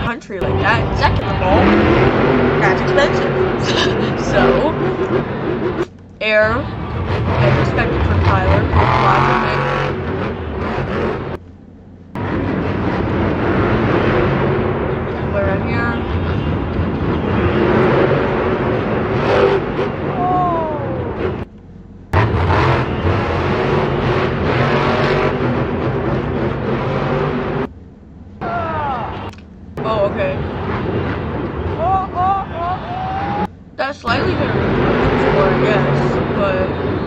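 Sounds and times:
monster truck engine revving: 0:00.0 - 0:11.4, 0:12.2 - 0:27.7, 0:28.4 - 0:37.0
voices shouting: 0:20.1 - 0:21.4, 0:28.4 - 0:30.0, 0:31.6 - 0:33.5
crowd noise: 0:31.4 - 0:33.5.

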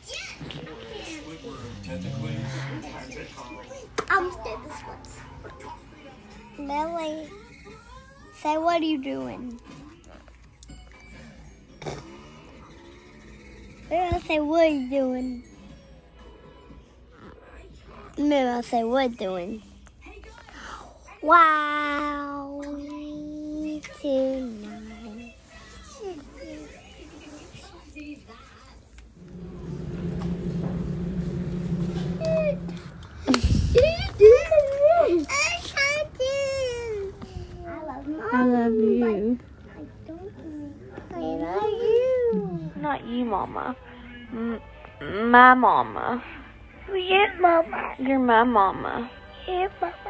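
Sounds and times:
low steady hum: 0:29.1 - 0:43.3.

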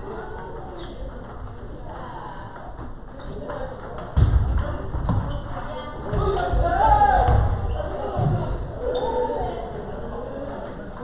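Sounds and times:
table tennis ball bouncing: 0:00.0 - 0:06.3.

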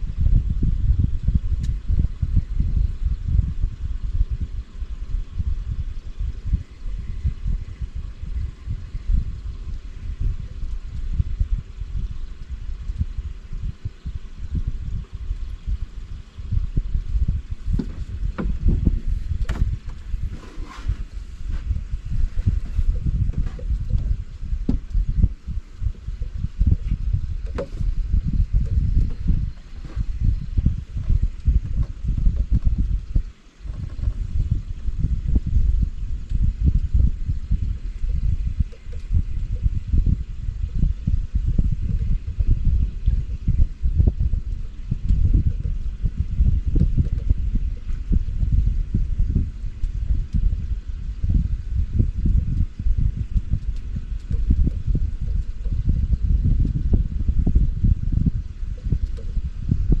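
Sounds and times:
wind buffeting microphone: 0:00.0 - 1:00.0.

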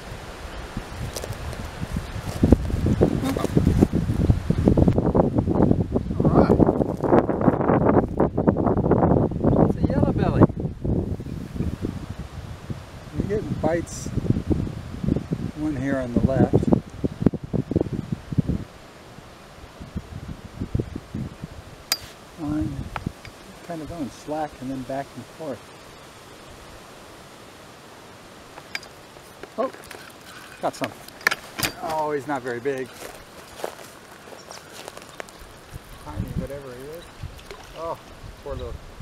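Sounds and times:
wind buffeting microphone: 0:00.0 - 0:27.0, 0:29.7 - 0:39.0
footsteps on leaf litter: 0:31.0 - 0:36.9.

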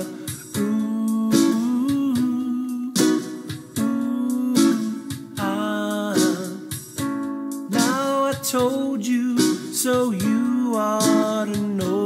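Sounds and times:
man singing a long note: 0:00.0 - 0:03.0
strummed ukulele chords: 0:00.0 - 0:12.0.

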